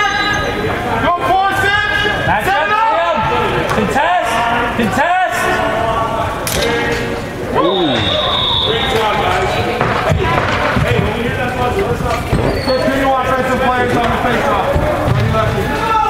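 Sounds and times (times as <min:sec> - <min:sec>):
players and spectators shouting: 0:00.0 - 0:16.0
high whistle blast: 0:07.6 - 0:09.2.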